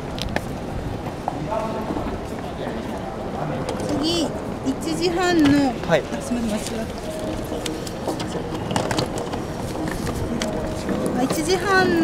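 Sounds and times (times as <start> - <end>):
background voices and hubbub: 0.0 - 12.0.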